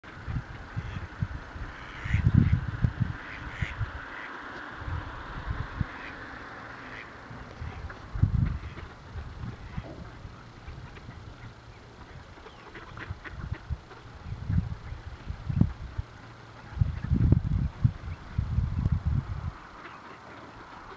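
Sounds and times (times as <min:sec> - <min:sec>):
ducks quacking: 0:00.1 - 0:05.0, 0:05.6 - 0:18.2, 0:19.4 - 0:20.9
low rumbling microphone bursts: 0:00.1 - 0:19.8.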